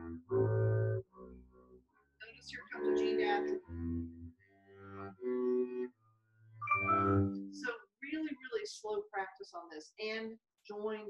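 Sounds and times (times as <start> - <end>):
bowed double bass notes: 0.0 - 7.7.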